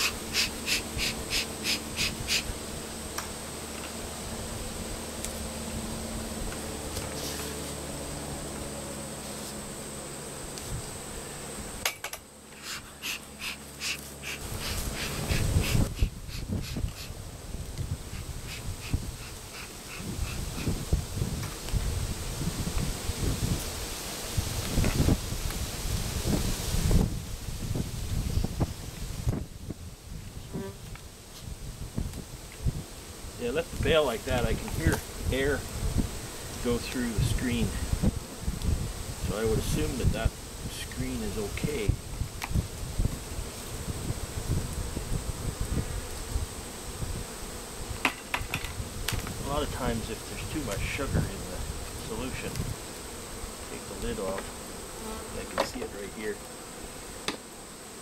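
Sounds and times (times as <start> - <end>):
bees buzzing: 0.0 - 58.0.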